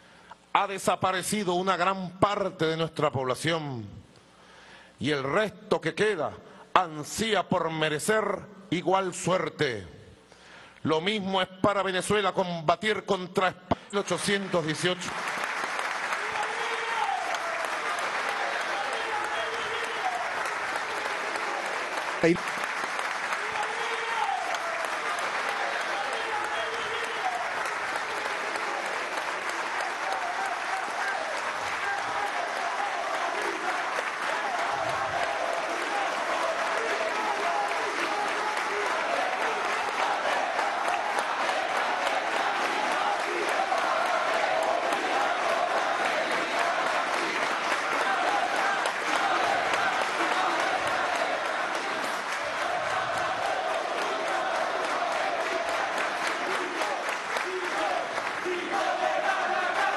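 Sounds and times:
audience applause: 14.0 - 59.9.

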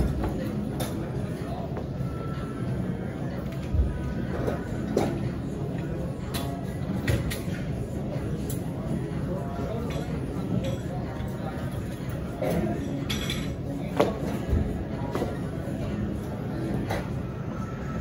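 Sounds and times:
faint music: 0.0 - 18.0
murmur of background chatter: 0.0 - 18.0.

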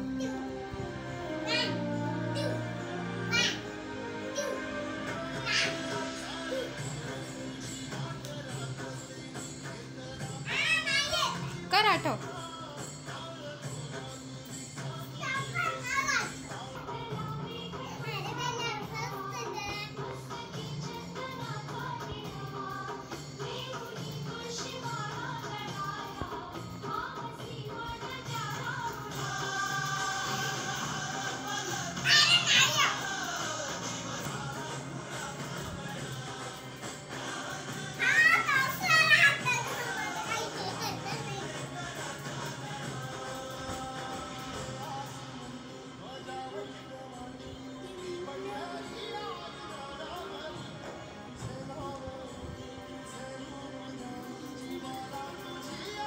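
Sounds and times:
song playing in background: 0.0 - 56.0
child shouting: 1.4 - 1.8, 3.3 - 3.6, 5.4 - 6.0, 10.5 - 11.5, 15.2 - 16.3, 32.0 - 33.1, 38.0 - 41.5.

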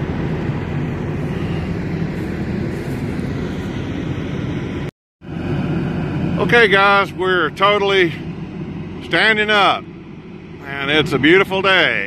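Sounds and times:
diesel engine rumbling: 0.0 - 12.0.

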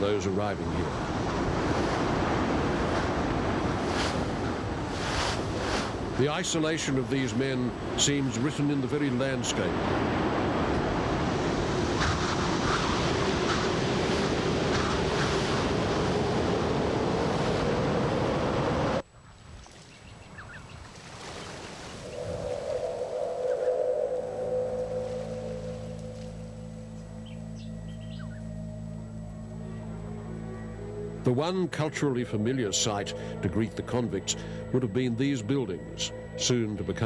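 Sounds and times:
rough sea: 0.0 - 26.6
strong wind: 0.6 - 6.2, 9.5 - 19.0, 20.6 - 27.2
slow music drone: 22.6 - 37.0.

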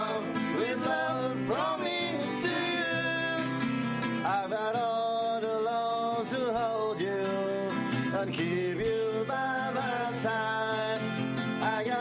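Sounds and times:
person singing: 0.0 - 3.6, 4.2 - 12.0
acoustic guitars playing: 0.0 - 12.0.

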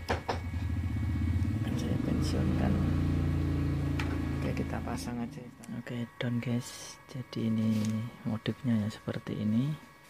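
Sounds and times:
low engine hum: 0.3 - 5.6.

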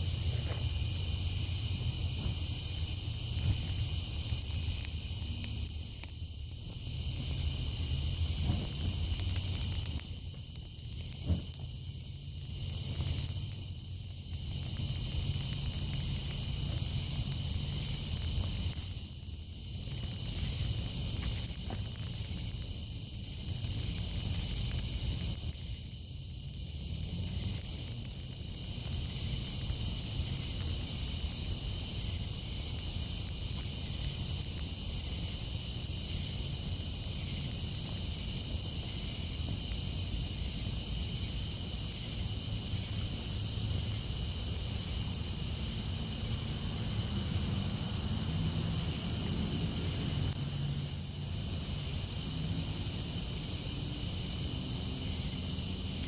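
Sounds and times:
fire rumbling and crackling: 0.0 - 56.0
night insects chirring: 0.0 - 56.0
sharp pop in fire: 8.4 - 10.0, 11.0 - 11.8.

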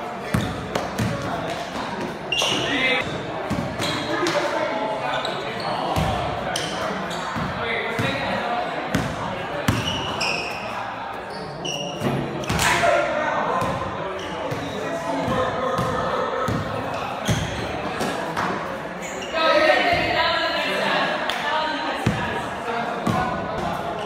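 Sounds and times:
players' voices echoing: 0.0 - 24.0
sneaker squeaks: 0.2 - 1.1, 2.0 - 4.4, 5.1 - 8.2, 9.7 - 12.9, 14.1 - 15.9, 16.5 - 18.0, 19.0 - 19.6, 23.6 - 24.0.

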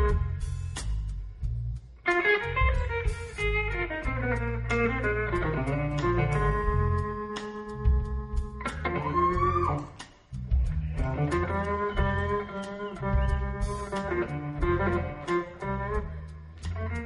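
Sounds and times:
blues band playing instrumental: 0.0 - 1.1, 2.0 - 17.0.

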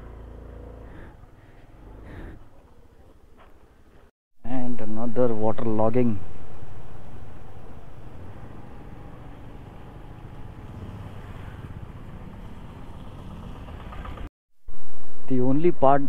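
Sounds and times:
faint scooter engine running: 0.0 - 4.1, 7.4 - 14.3
wind and road noise: 0.0 - 4.1, 4.7 - 15.2.

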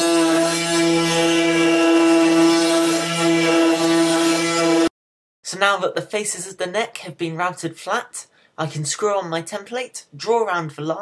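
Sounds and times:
wood router whining: 0.0 - 4.9.

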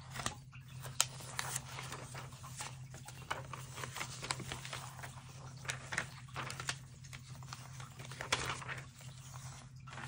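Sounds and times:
magazine pages rustling: 0.0 - 10.0
paper slaps: 0.1 - 10.0.

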